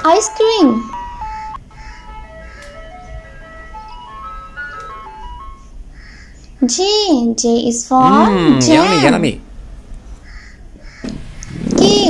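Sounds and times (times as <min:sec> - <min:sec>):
ice cream truck jingle: 0:00.0 - 0:05.9.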